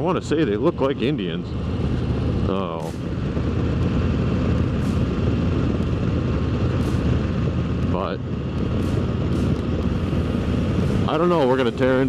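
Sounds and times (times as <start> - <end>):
motorcycle engine running: 0.0 - 12.0
road and wind noise: 0.0 - 12.0.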